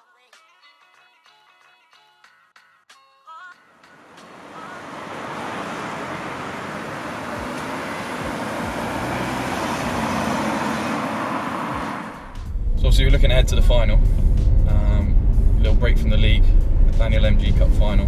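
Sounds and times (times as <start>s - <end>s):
car tyre noise passing: 3.8s - 18.0s.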